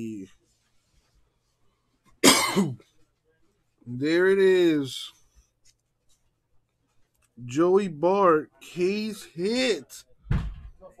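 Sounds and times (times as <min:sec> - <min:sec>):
man coughing: 0:02.2 - 0:02.8.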